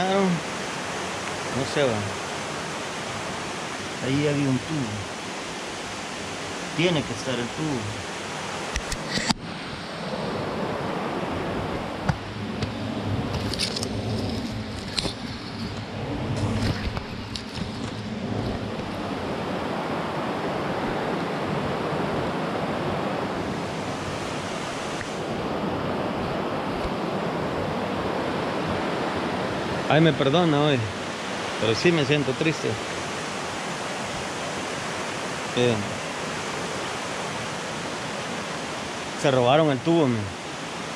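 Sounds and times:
steady rushing noise: 0.0 - 40.3
rustling undergrowth: 12.5 - 19.1.

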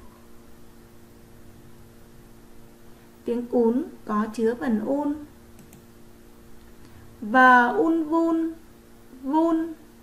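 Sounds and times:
low steady hum: 0.0 - 10.0
woman speaking: 3.2 - 5.3, 7.2 - 8.6, 9.2 - 9.8
computer mouse clicks: 5.6 - 5.9.

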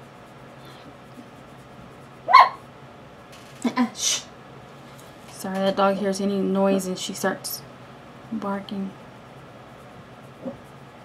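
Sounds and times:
dog barking: 2.3 - 2.6.

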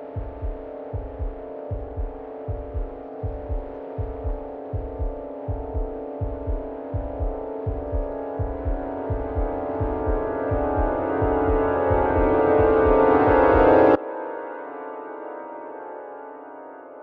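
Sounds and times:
pulsing heartbeat-like bass thumps: 0.2 - 13.6.

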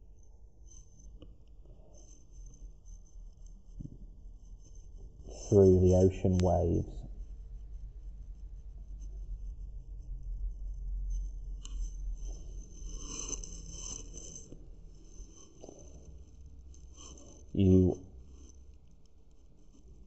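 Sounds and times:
steady low hum: 0.0 - 20.0.

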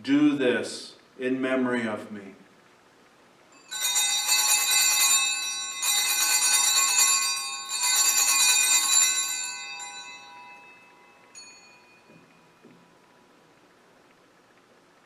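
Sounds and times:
altar bells ringing: 3.5 - 13.0.

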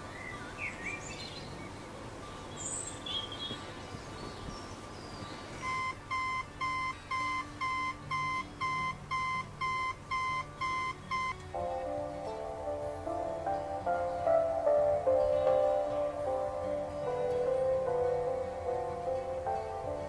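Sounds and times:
birds chirping: 0.0 - 20.0
alarm clock beeping: 5.6 - 11.4.

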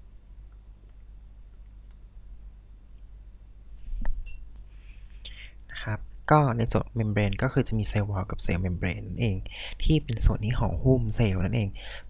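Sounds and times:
low electrical hum: 0.0 - 12.0
faint hiss: 2.2 - 6.2, 9.4 - 10.3.

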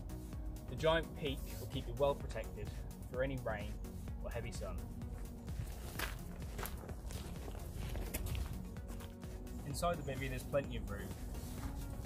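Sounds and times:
background music: 0.0 - 12.0
footsteps on dry leaves: 4.7 - 12.0.

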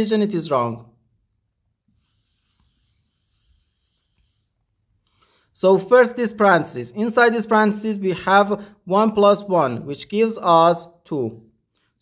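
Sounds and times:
whiteboard being wiped: 1.8 - 4.7.

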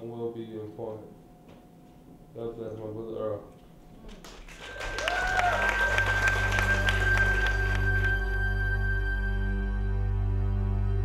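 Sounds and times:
audience applause: 4.1 - 9.0
soft ambient music: 4.5 - 11.0.

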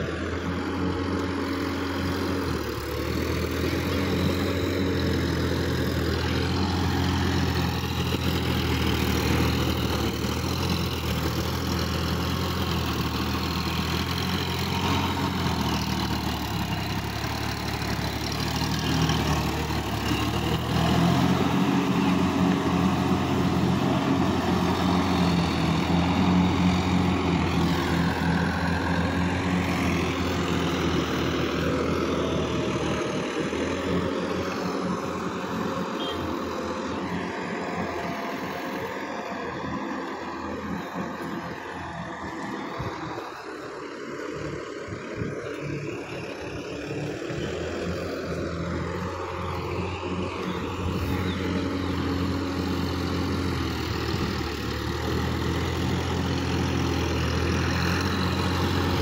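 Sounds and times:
tractor diesel engine under load: 0.0 - 59.0.

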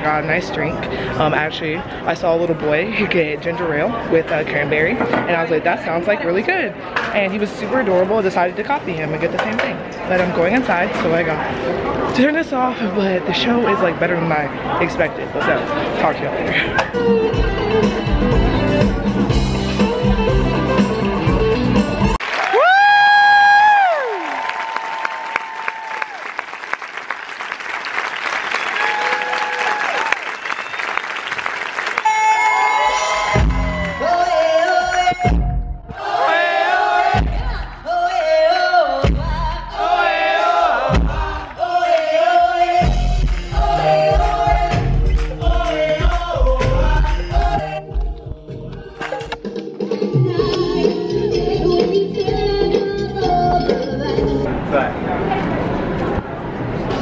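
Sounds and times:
live band and singers: 15.2 - 22.2, 32.0 - 55.5
audience cheering and applause: 22.1 - 35.1.

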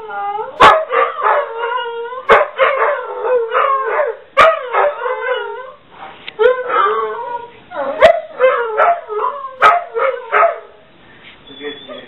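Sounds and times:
dogs howling and barking: 0.0 - 10.9.

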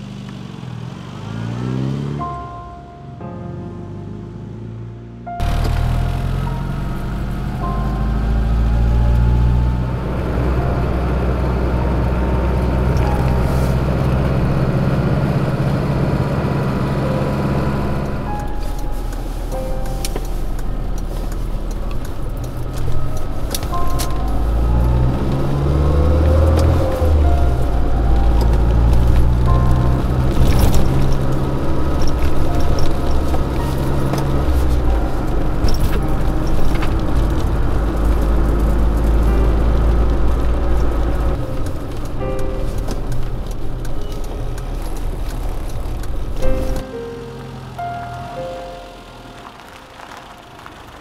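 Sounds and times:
car engine and road rumble: 0.0 - 51.0
music: 2.2 - 50.4
whine rising in pitch: 5.4 - 51.0.

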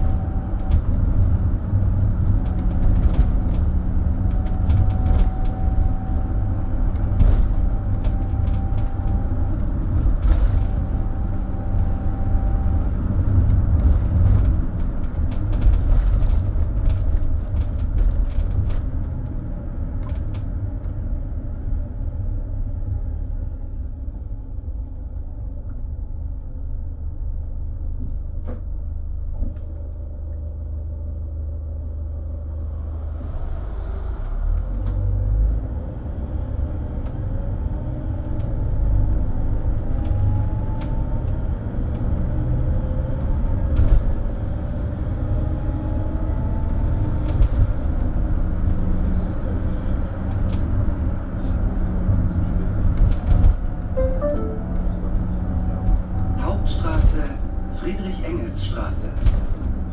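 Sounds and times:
bus diesel engine rumbling: 0.0 - 59.9
drivetrain whine: 49.5 - 56.6.

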